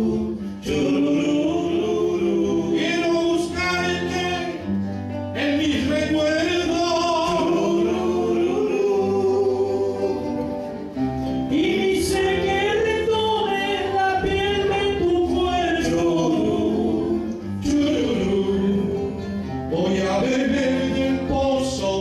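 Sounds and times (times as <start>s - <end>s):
men singing in harmony: 0.0s - 22.0s
strummed acoustic guitars: 0.0s - 22.0s.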